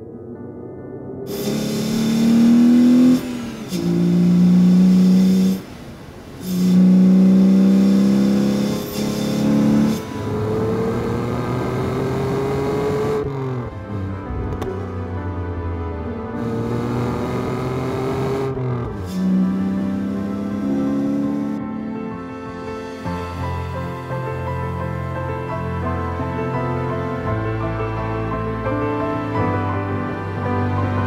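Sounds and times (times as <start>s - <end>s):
music: 0.0s - 4.0s, 8.6s - 31.0s
car engine revving hard: 1.3s - 13.8s, 16.4s - 21.6s.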